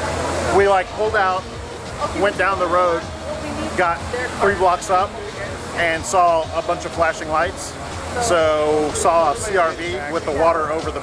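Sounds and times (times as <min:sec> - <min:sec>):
man talking: 0:00.5 - 0:11.0.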